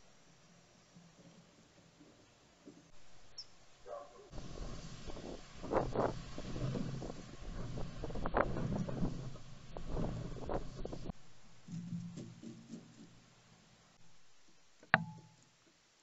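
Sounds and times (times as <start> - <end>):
wind buffeting microphone: 4.3 - 11.2.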